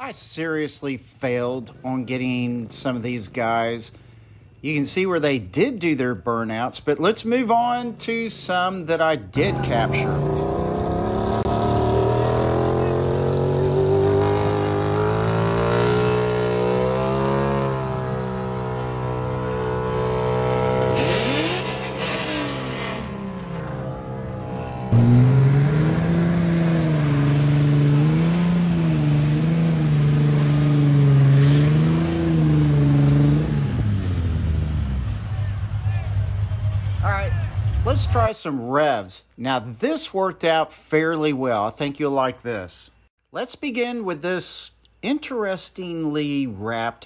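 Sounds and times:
car engine at high revs: 9.4 - 35.3
car engine revving in surges: 9.4 - 37.0.

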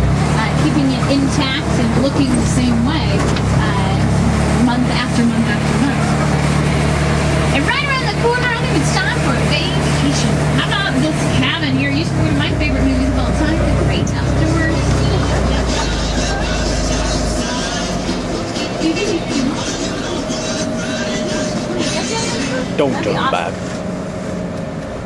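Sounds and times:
indistinct voices: 0.0 - 23.7
tram engine running: 0.0 - 25.0.

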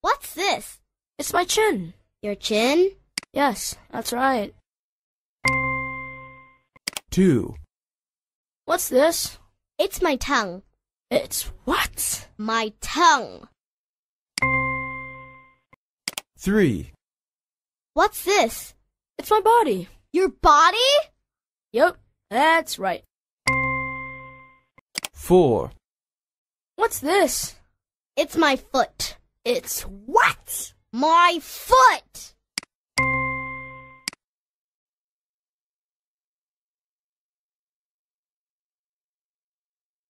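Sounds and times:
bell-like electronic chime: 5.5 - 6.6, 14.4 - 15.6, 23.5 - 24.6, 33.0 - 34.0
short clicks: 6.8 - 7.1, 16.1 - 16.3, 25.0 - 25.2.

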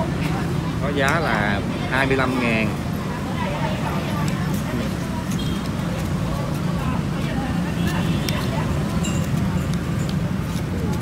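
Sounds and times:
people chattering: 0.0 - 11.0
street traffic rumble: 0.0 - 11.0.

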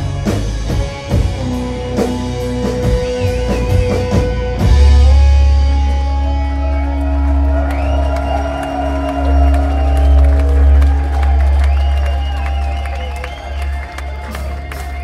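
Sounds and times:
rock band sustained guitar chord: 0.0 - 15.0
crowd cheering and whistling: 6.0 - 15.0.

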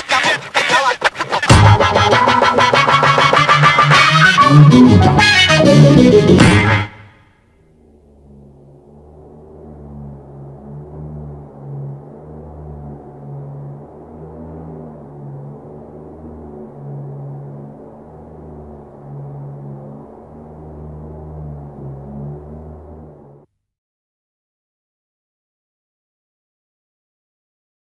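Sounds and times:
low drone of deep tones: 6.3 - 23.5.

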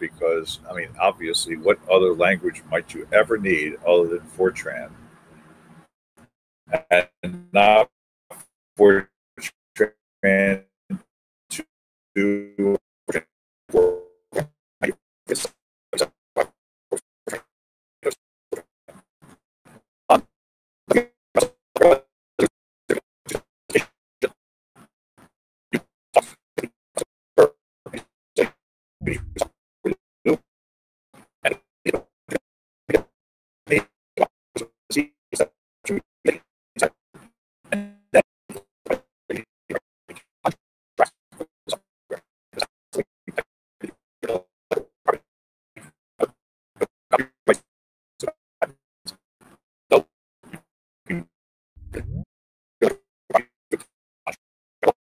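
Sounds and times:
choppy video call voice: 0.0 - 4.9, 6.7 - 13.9, 28.4 - 29.5, 37.7 - 38.0, 51.8 - 52.2
man's voice breaking up on call: 0.0 - 4.9, 6.8 - 7.9.

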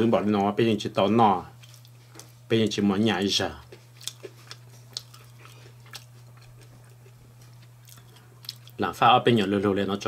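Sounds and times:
steady low hum: 0.0 - 10.0
person chewing crunchy food: 1.6 - 2.5, 3.5 - 8.8.

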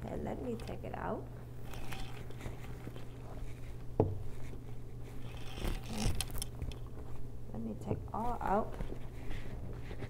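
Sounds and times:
rustling and scraping of leather: 1.6 - 7.3, 8.5 - 10.0.

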